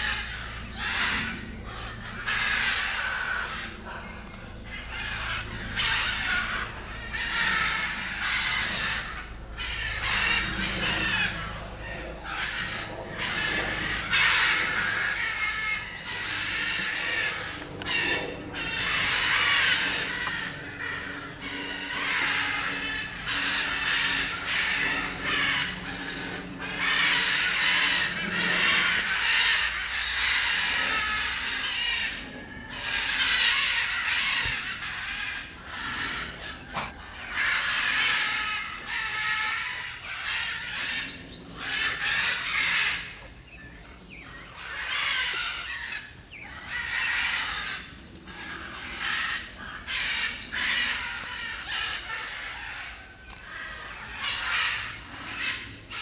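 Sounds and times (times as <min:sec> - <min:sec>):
macaws squawking: 0:00.0 - 0:56.0.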